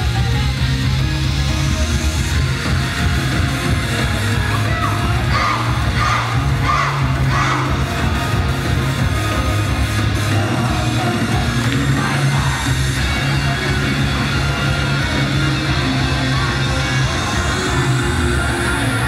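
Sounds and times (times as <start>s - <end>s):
crowd shouting and cheering: 0.0s - 19.0s
loud pop music with heavy bass: 0.0s - 19.0s.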